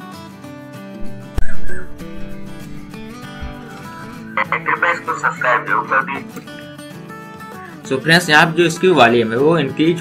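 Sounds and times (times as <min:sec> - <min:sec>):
acoustic guitar music: 0:01.0 - 0:07.9.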